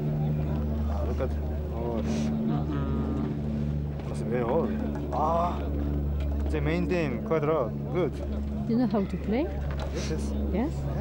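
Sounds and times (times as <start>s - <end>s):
engine running steadily: 0.0s - 11.0s.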